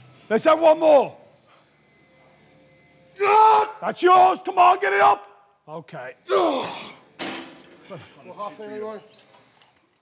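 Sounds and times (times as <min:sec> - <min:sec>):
man's drawn-out straining groan: 0:06.3 - 0:07.0.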